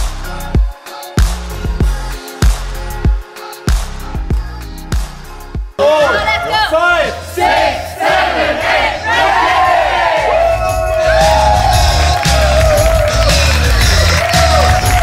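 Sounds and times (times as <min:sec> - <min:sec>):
upbeat workout music with bass: 0:00.0 - 0:15.0
group of voices shouting: 0:06.1 - 0:13.2.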